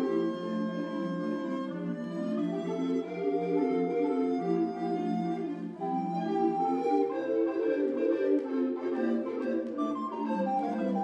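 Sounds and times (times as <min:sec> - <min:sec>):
recorder ensemble playing: 0:00.0 - 0:11.0.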